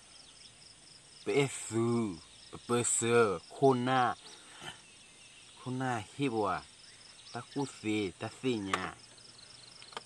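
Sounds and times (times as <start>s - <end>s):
crickets chirping: 0.0s - 10.0s
man talking: 1.2s - 4.8s, 5.6s - 6.7s, 7.3s - 9.0s.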